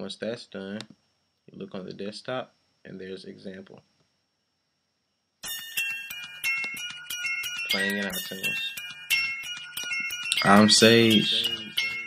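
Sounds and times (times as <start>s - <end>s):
hip-hop beat: 5.4s - 12.0s.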